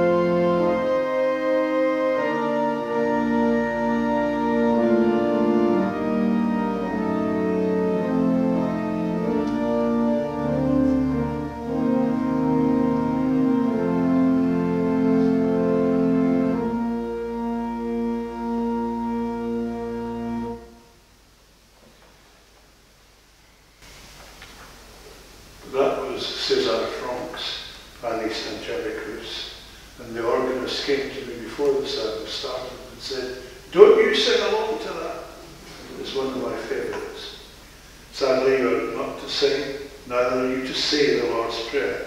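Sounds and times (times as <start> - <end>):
church organ playing chords: 0.0 - 21.3, 25.3 - 42.0.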